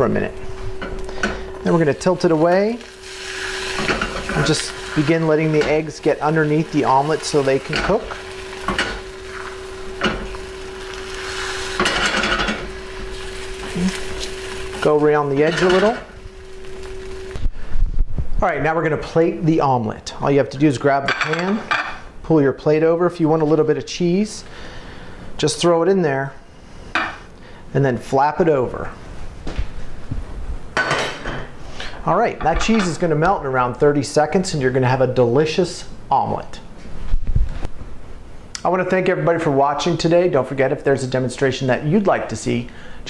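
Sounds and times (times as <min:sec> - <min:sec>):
steady hum: 0:00.0 - 0:20.1
faint sizzle: 0:00.0 - 0:30.0, 0:31.5 - 0:43.0
spatula scraping frying pan: 0:02.4 - 0:17.4.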